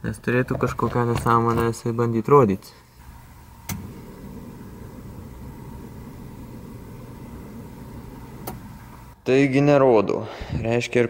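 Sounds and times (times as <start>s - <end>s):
car starter motor cranking: 3.1s - 9.2s.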